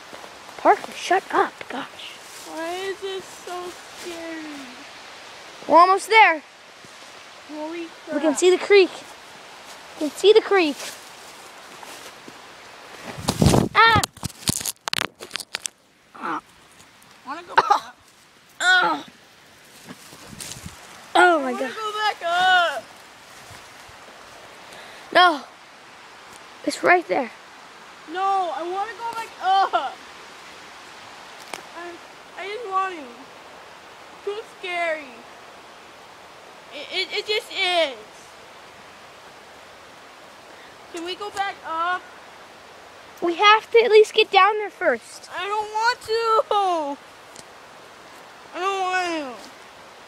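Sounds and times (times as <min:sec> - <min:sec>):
crackles and scrapes in dry leaves: 0:00.0 - 0:05.9, 0:06.7 - 0:24.9
creek water rushing: 0:00.0 - 0:50.0.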